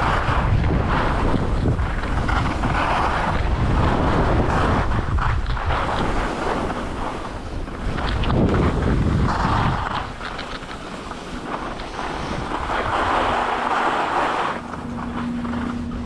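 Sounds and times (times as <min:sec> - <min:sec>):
skis scraping on packed snow: 0:00.0 - 0:16.0
wind rushing over microphone: 0:00.0 - 0:16.0.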